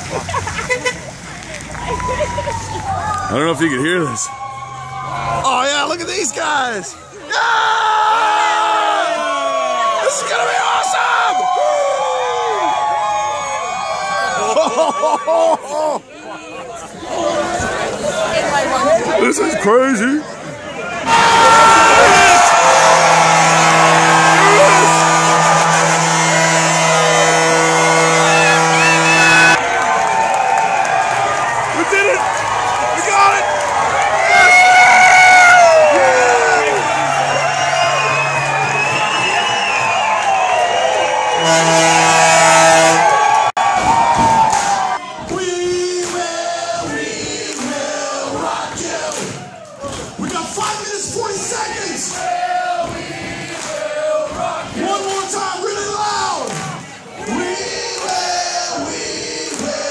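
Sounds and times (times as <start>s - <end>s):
crowd cheering and yelling: 0.0s - 59.9s
low steady horn: 22.4s - 29.6s, 36.6s - 43.4s.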